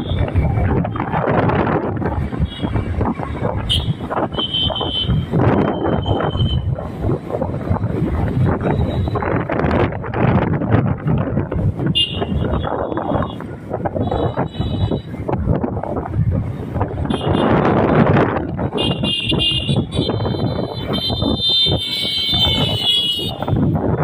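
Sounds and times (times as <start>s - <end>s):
vehicle road and engine noise: 0.0s - 24.0s
wind buffeting microphone: 0.0s - 24.0s.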